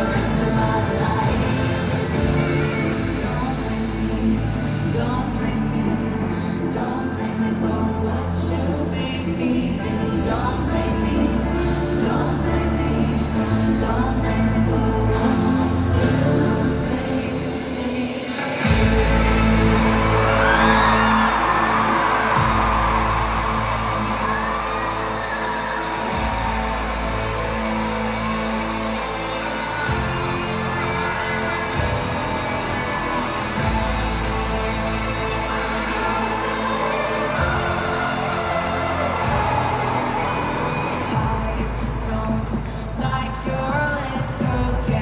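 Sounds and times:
sustained gliding vocal: 0:00.0 - 0:43.0
loud live pop music: 0:00.0 - 0:45.0.

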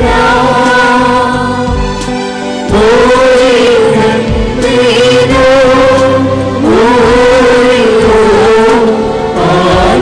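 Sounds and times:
sung liturgical chant: 0:00.0 - 0:01.8, 0:02.7 - 0:10.0.

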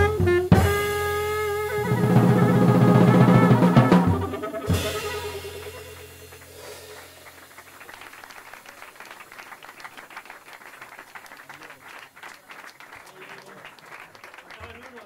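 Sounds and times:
audience applause: 0:03.2 - 0:15.0.

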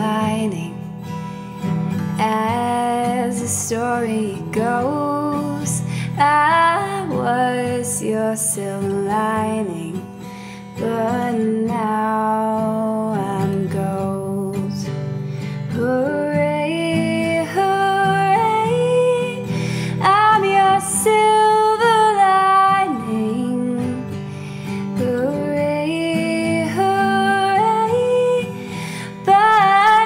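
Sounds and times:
woman singing: 0:00.0 - 0:01.2, 0:01.9 - 0:30.0
acoustic guitar: 0:00.0 - 0:30.0.

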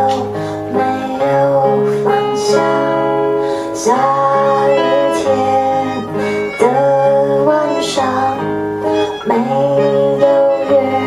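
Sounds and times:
strummed guitar: 0:00.0 - 0:11.0
woman singing: 0:00.0 - 0:11.0.

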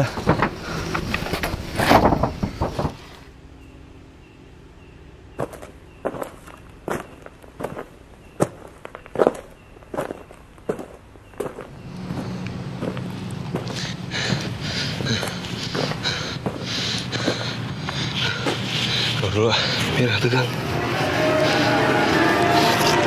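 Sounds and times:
footsteps on hard ground: 0:05.4 - 0:20.7.

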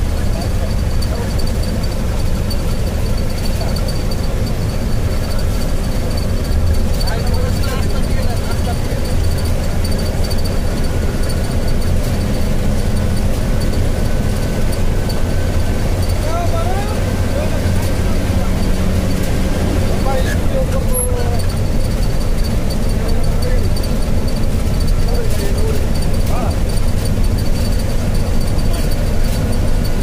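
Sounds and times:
vehicle driving on highway: 0:00.0 - 0:30.0.

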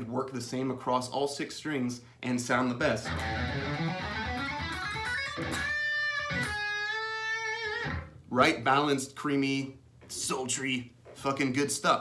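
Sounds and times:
electric guitar picked notes: 0:03.0 - 0:08.2.

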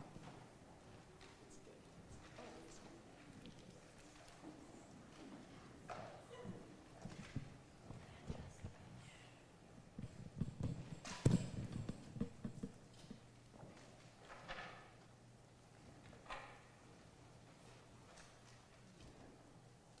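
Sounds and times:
knocks from shoes and folders: 0:10.0 - 0:13.3.

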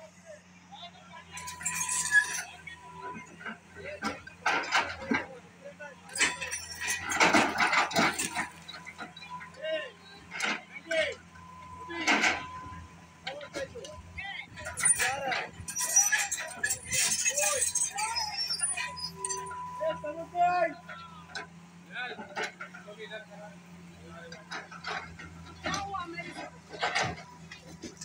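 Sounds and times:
excavator diesel engine hum: 0:00.0 - 0:28.0
excavator bucket breaking walls: 0:06.1 - 0:09.4, 0:14.5 - 0:19.6.

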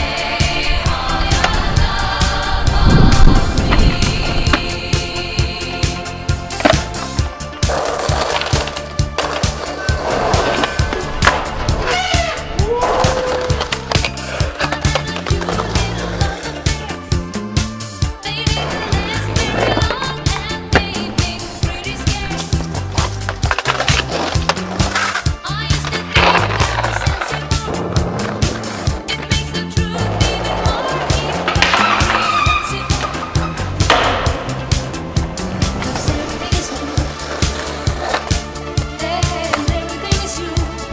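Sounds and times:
skateboard grinding on ledge: 0:06.5 - 0:16.9, 0:17.6 - 0:38.4.

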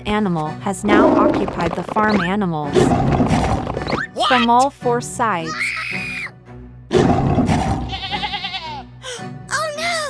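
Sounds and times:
goat bleating: 0:07.9 - 0:08.8.

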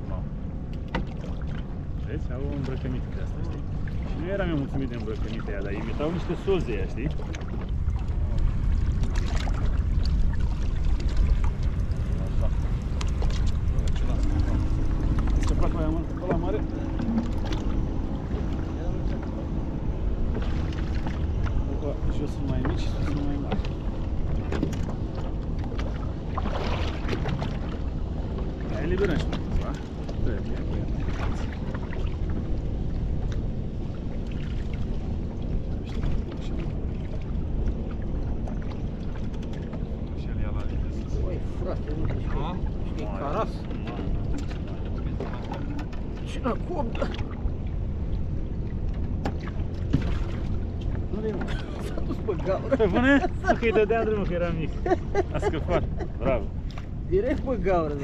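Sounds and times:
wind and water rumble: 0:00.0 - 0:58.0.

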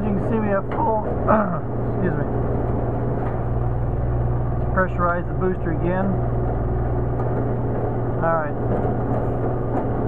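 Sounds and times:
steady motor hum: 0:00.0 - 0:10.0.

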